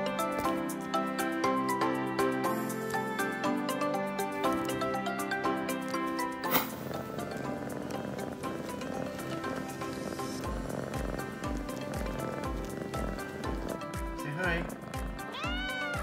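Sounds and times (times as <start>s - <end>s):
background music: 0.0s - 16.0s
kitten purring: 6.2s - 16.0s.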